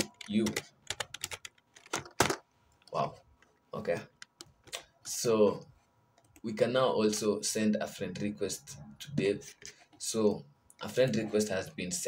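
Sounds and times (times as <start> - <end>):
typing on computer keyboard: 0.0 - 2.3.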